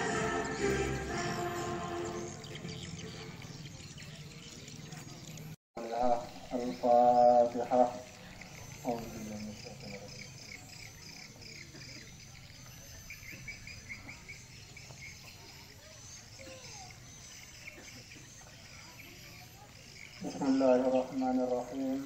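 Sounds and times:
bird chirping: 0.0s - 22.0s
insect trill: 5.8s - 22.0s.

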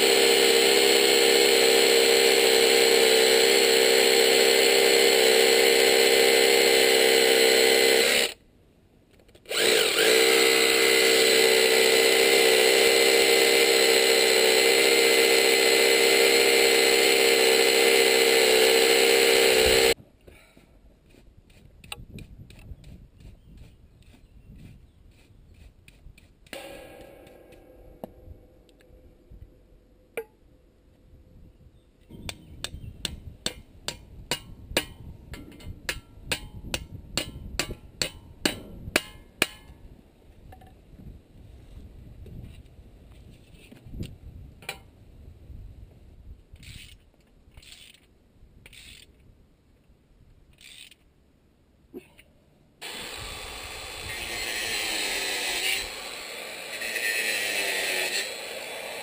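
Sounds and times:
electric drill boring into concrete: 0.0s - 8.4s, 9.5s - 20.0s, 26.5s - 27.4s, 52.8s - 59.0s.

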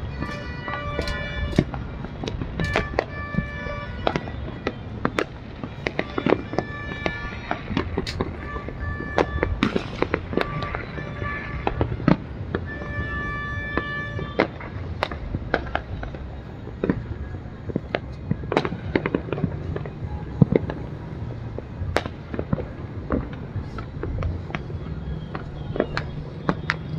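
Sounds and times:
fireworks bangs and cracks: 0.0s - 26.9s.

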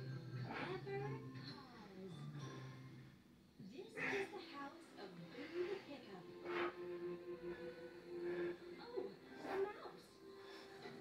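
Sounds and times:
television music: 0.0s - 11.0s
television voices speaking: 0.0s - 11.0s.

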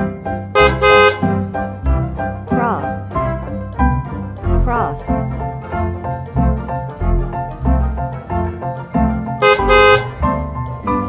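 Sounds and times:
background music: 0.0s - 11.0s
cartoon truck horn honking: 0.6s - 1.4s, 9.4s - 10.4s.

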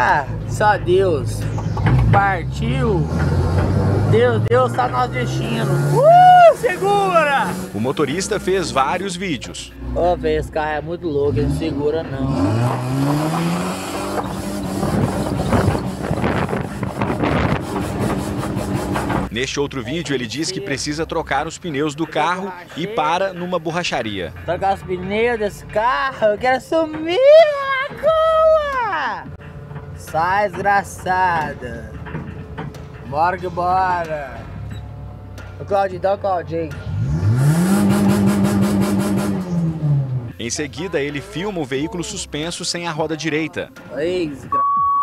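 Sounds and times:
car engine hum: 0.0s - 20.0s, 29.4s - 42.4s
wind and road noise: 0.0s - 22.1s, 24.1s - 44.5s.

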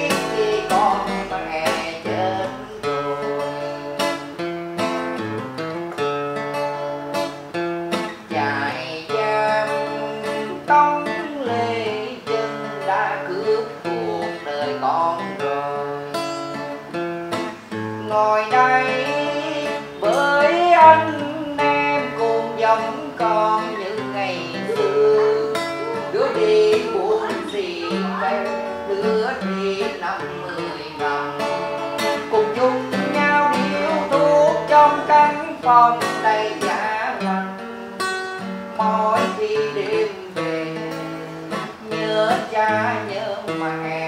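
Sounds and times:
acoustic guitar: 0.0s - 44.0s
person singing: 0.0s - 44.0s.

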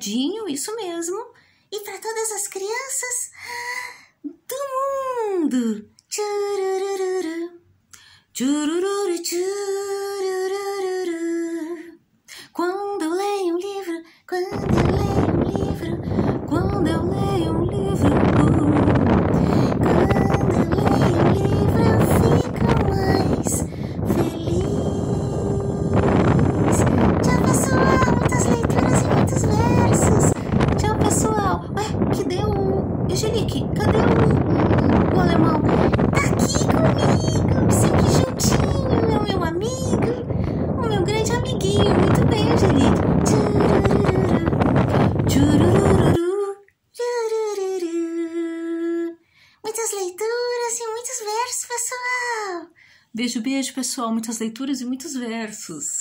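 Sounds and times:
woman singing children's tune: 0.0s - 3.4s, 4.3s - 7.6s, 8.3s - 56.0s.

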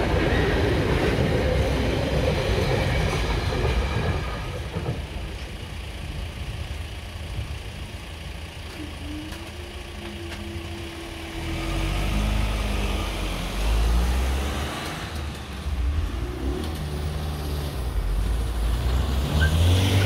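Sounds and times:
vehicle engines rumbling: 0.0s - 20.0s.

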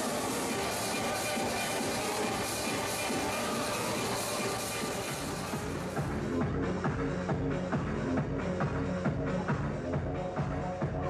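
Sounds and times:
techno music with kick drum: 0.0s - 11.0s.

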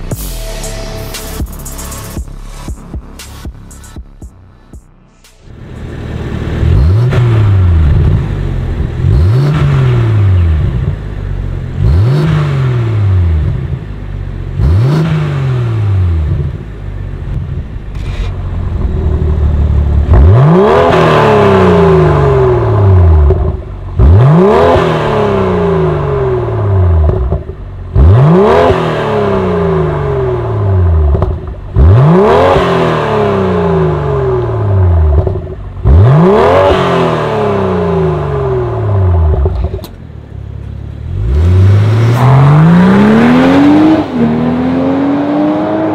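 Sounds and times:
car engine revving: 0.0s - 45.9s.

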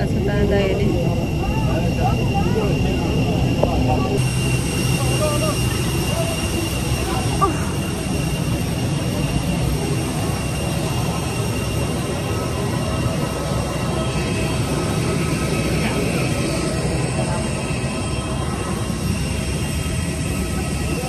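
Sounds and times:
jet aircraft whine and rumble: 0.0s - 21.0s.

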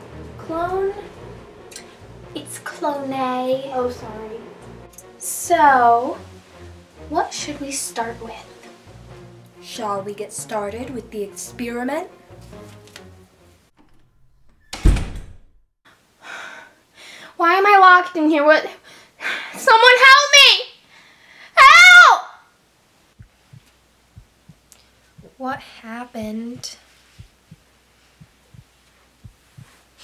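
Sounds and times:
heartbeat thumps: 23.2s - 25.4s, 26.2s - 29.9s.

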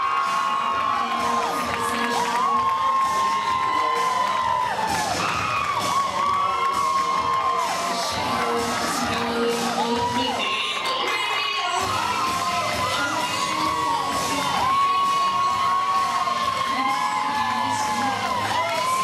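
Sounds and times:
audience cheering and whooping: 0.0s - 19.0s.

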